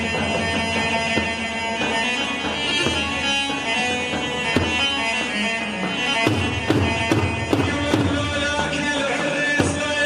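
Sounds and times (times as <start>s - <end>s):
large drums beaten with sticks: 6.2s - 10.0s.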